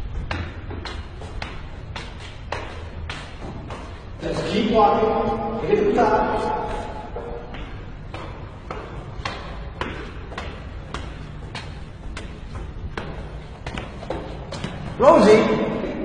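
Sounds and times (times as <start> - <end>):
footsteps climbing stairs: 0.0 - 15.1.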